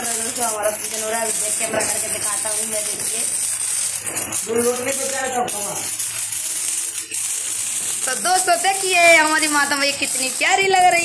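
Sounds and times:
sparklers fizzing crackle: 0:00.0 - 0:11.0.

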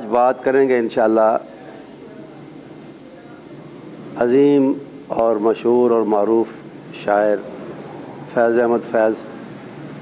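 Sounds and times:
man speaking: 0:00.0 - 0:01.6, 0:03.1 - 0:07.6, 0:08.3 - 0:09.4
faint high-pitched whine: 0:00.0 - 0:10.0
room noise: 0:00.0 - 0:10.0.

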